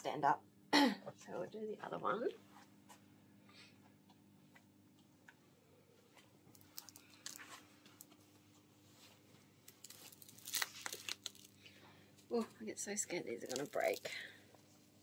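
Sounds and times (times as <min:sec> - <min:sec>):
faint steady hum: 0:00.0 - 0:15.0
nylon stocking rustling: 0:09.2 - 0:11.6, 0:13.2 - 0:14.3.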